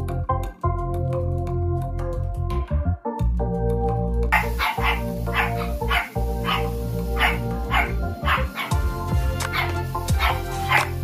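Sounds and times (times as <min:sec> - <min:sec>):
background music: 0:00.0 - 0:11.0
dog barking: 0:04.4 - 0:08.9, 0:09.5 - 0:11.0.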